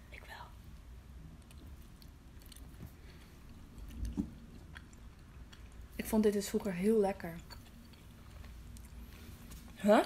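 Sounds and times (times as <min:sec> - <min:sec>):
chewing soft food: 0:00.7 - 0:09.8.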